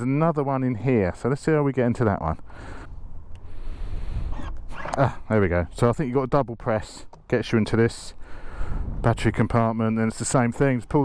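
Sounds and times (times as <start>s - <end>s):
wind rumble on microphone: 2.9s - 5.2s, 8.4s - 10.9s.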